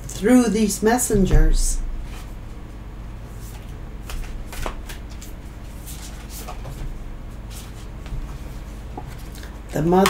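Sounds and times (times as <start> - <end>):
cards being shuffled: 3.4 - 6.8.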